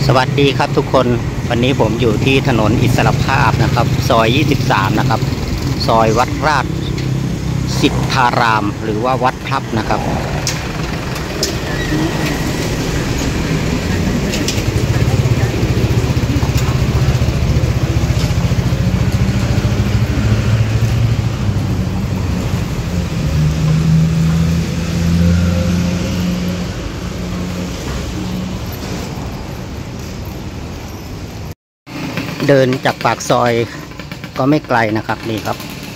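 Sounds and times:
street traffic: 0.0 - 35.9
vehicle engine humming nearby: 0.0 - 35.9.

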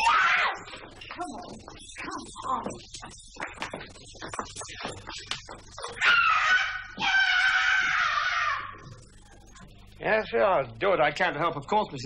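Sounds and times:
girl screaming: 0.0 - 0.6, 6.0 - 8.8.

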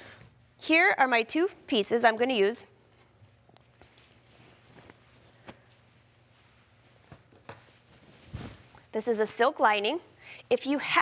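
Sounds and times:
fabric and paper rustling: 3.2 - 8.8.

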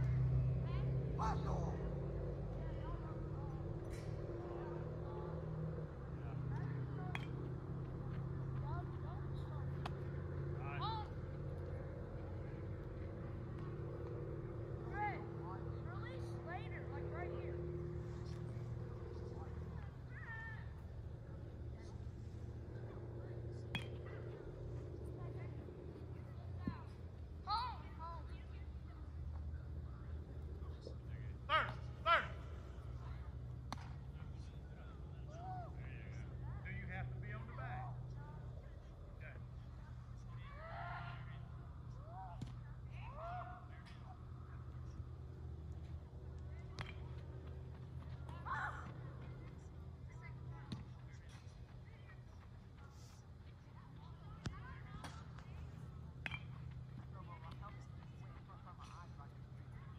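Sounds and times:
distant voices of players: 0.0 - 59.9
steady low hum: 0.0 - 59.9
baseball impacts: 6.4 - 8.6, 21.8 - 25.2, 30.8 - 34.6, 44.8 - 49.6, 54.3 - 58.3.

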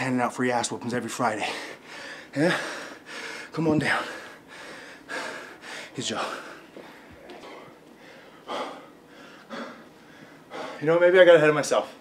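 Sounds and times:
man breathing hard: 1.4 - 10.9.

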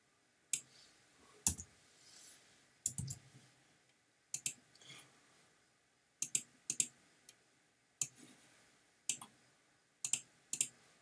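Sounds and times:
computer mouse clicking: 2.9 - 3.2, 4.4 - 4.6, 6.2 - 6.9, 9.1 - 9.3, 10.0 - 10.8.

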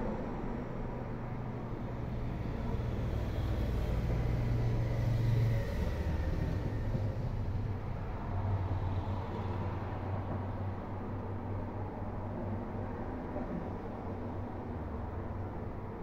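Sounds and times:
road noise: 0.0 - 16.0.

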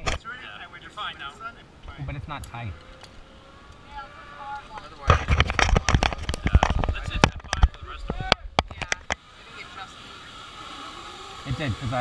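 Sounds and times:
voices: 0.0 - 12.0.

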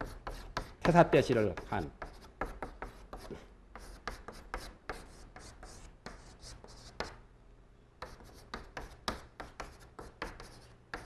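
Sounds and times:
chalk writing on blackboard: 0.0 - 7.2, 8.0 - 11.0.

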